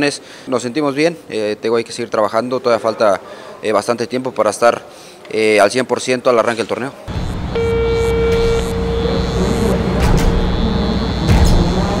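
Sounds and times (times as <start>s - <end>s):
held tone: 7.1s - 12.0s.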